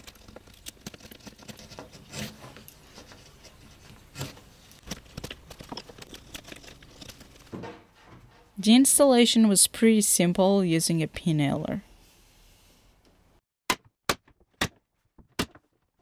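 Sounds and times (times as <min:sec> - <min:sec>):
gouge scraping wood: 0:00.0 - 0:05.1.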